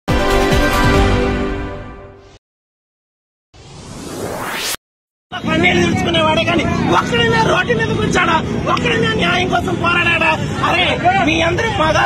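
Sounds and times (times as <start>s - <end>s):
street traffic: 5.3s - 12.0s
crowd: 5.4s - 12.0s.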